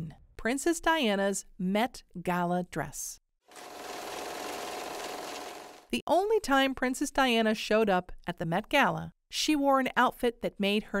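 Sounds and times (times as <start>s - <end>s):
fast mechanical rattle: 3.5s - 5.9s.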